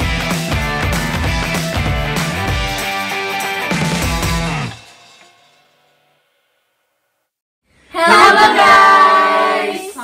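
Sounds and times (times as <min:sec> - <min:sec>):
voices singing held note: 0:07.9 - 0:10.0.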